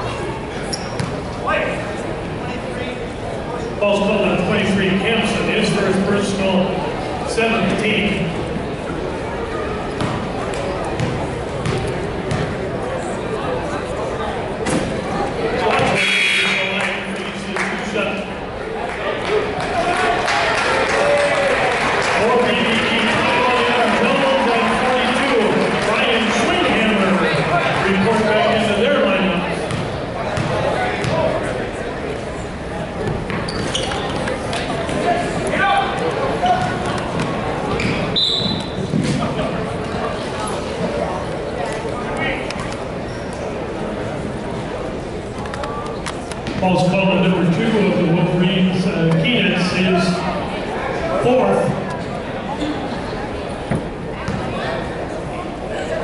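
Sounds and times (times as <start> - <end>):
murmur of crowd voices: 0.0 - 56.0
sneaker squeaks: 0.6 - 1.4, 33.0 - 34.7, 36.4 - 39.2, 43.0 - 43.4.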